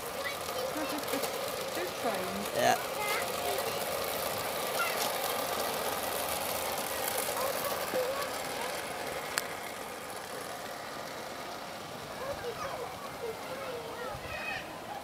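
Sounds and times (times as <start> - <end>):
faint distant voices: 0.0 - 15.0
model train rumbling along track: 0.0 - 15.0.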